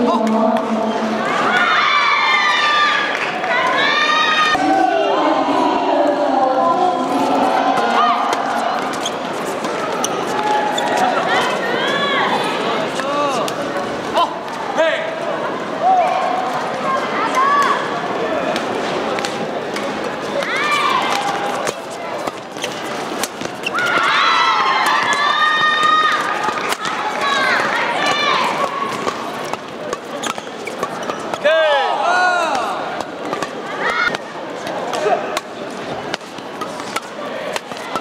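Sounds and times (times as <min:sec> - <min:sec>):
indoor court background noise: 0:00.0 - 0:38.0
shoes squealing on court floor: 0:08.2 - 0:12.0, 0:20.3 - 0:31.6
racket hitting shuttlecock: 0:24.8 - 0:27.8, 0:28.4 - 0:31.4, 0:32.5 - 0:38.0.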